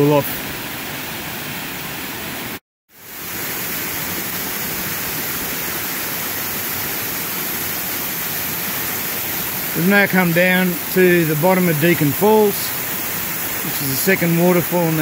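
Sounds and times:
waterfall and creek rushing: 0:00.0 - 0:15.0.

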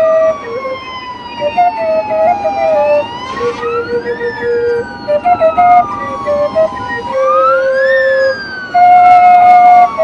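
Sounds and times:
siren-like electronic tones: 0:00.0 - 0:10.0
whine sliding down in pitch: 0:00.0 - 0:10.0.

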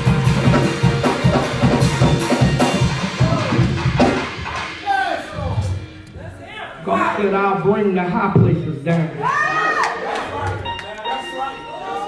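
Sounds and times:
live band with drum kit: 0:00.0 - 0:06.6.

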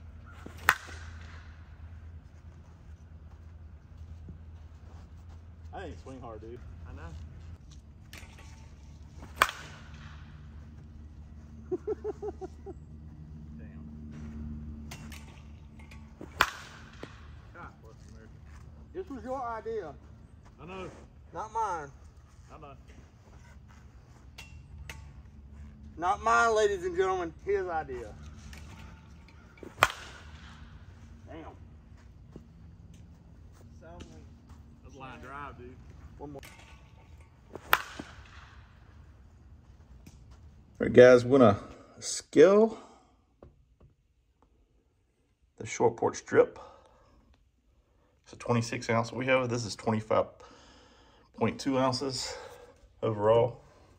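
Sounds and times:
bat hitting softball crack: 0:00.2 - 0:02.0, 0:08.0 - 0:10.6, 0:14.7 - 0:17.6, 0:28.0 - 0:31.0, 0:36.4 - 0:39.0
man laughing: 0:11.6 - 0:12.8.

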